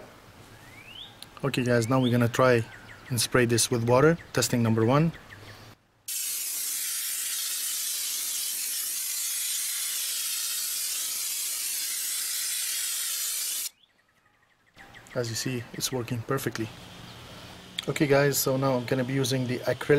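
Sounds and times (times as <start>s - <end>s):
air sprayer hissing: 6.1s - 13.7s.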